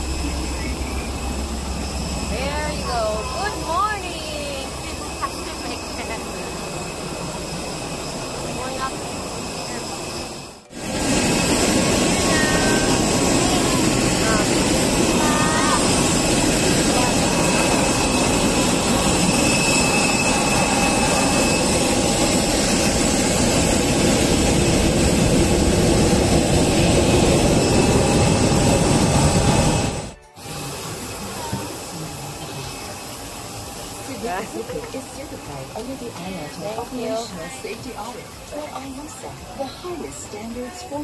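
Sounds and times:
faint high whine: 0.0s - 41.0s
jet engine roar: 0.0s - 41.0s.

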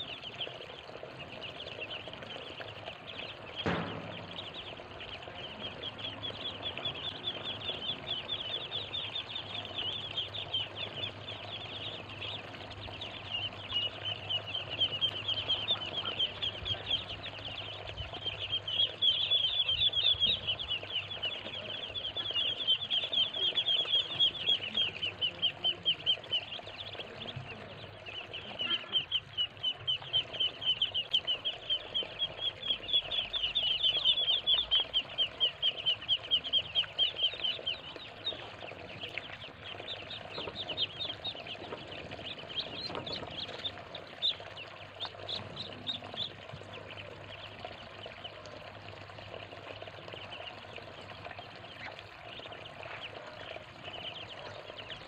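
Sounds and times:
ducklings peeping: 0.0s - 55.0s.

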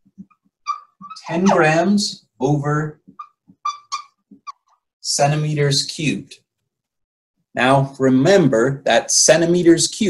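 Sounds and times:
marker squeaking on whiteboard: 0.0s - 1.9s, 3.0s - 5.6s.

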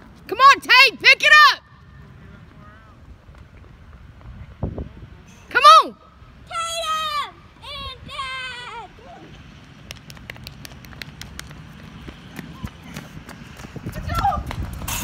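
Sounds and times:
running footsteps on hard court: 9.6s - 14.9s.

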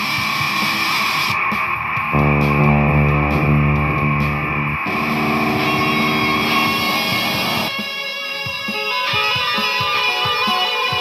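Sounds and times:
electric guitar with effects: 2.2s - 7.7s.

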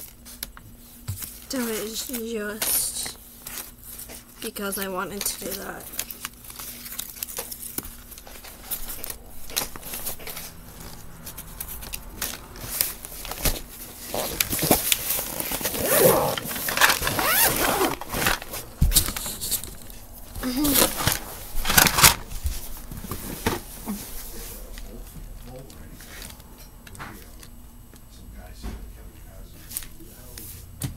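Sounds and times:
paper rustling and crinkling: 0.0s - 26.5s.

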